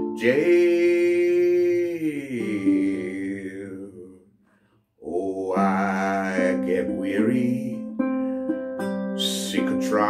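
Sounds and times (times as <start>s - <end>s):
man singing: 0.0s - 4.3s, 5.0s - 8.0s, 9.2s - 10.0s.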